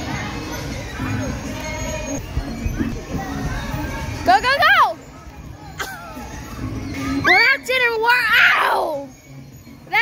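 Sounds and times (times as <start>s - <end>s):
children playing: 0.0s - 10.0s.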